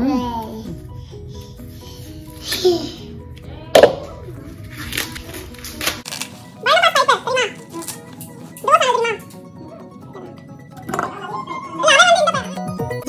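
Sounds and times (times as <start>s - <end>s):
background music: 0.0s - 13.0s
corn husk snapping: 4.8s - 6.4s.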